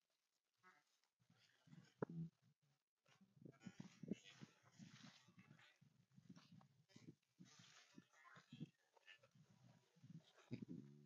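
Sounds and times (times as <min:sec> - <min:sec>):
soft footsteps in grass: 0:03.1 - 0:10.4.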